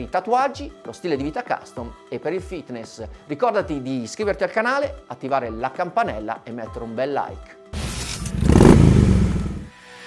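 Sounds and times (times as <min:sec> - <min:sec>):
motorcycle engine revving: 0:07.8 - 0:09.7.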